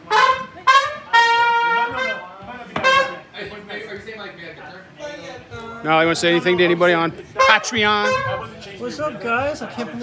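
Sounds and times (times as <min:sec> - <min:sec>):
horn section playing short stabs: 0:00.0 - 0:03.3, 0:07.4 - 0:08.6.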